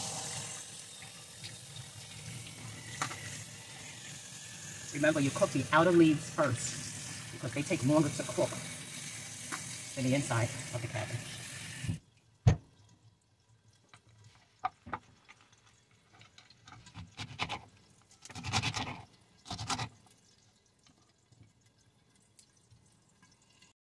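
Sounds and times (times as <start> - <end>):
knife crunching through cabbage: 18.2 - 19.9.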